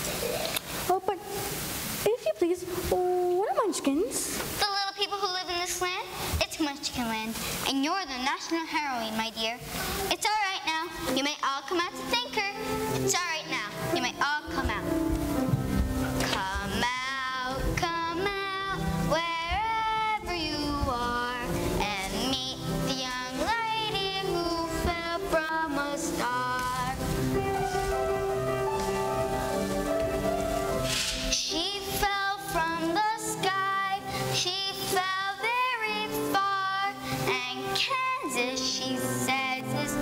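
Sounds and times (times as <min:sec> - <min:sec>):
instrumental accompaniment: 0:11.0 - 0:40.0.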